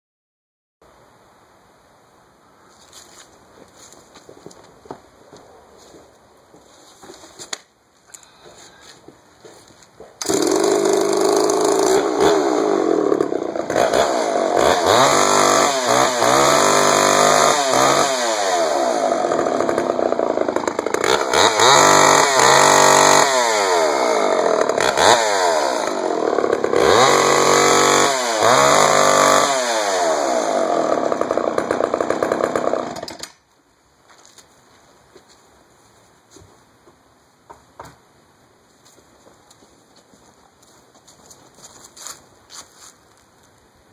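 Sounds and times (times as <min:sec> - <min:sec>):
faint handling sounds: 0:02.7 - 0:10.2
chainsaw starting and revving: 0:10.2 - 0:33.4.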